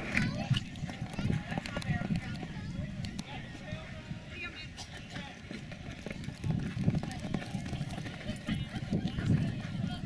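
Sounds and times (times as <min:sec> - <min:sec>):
horse hoofbeats galloping on dirt: 0:04.8 - 0:10.0.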